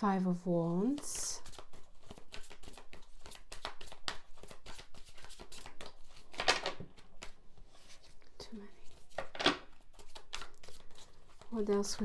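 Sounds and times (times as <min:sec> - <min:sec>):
cards being shuffled: 0:00.9 - 0:12.0.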